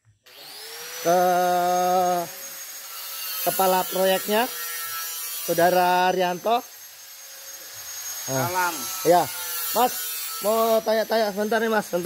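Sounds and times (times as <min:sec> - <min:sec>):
angle grinder motor whining: 0:00.1 - 0:12.0.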